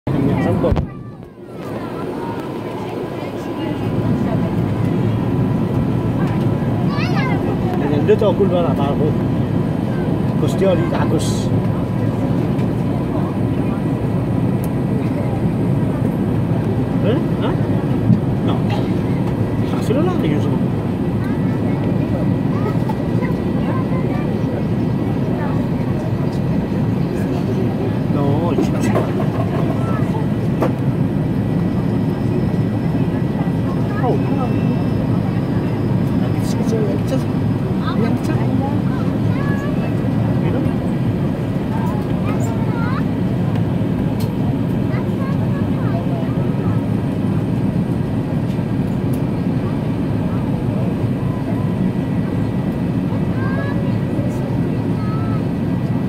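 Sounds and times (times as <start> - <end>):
airplane cabin engine rush: 0.0 - 56.0
faint passenger chatter: 0.1 - 56.0.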